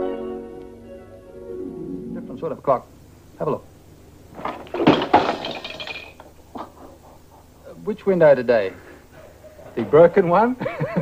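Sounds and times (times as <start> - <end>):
crash of something breaking: 4.4 - 6.2.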